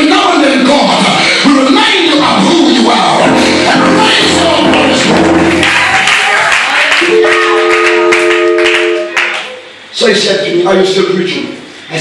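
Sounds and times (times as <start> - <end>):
keyboard sustained chord: 7.0 - 9.3.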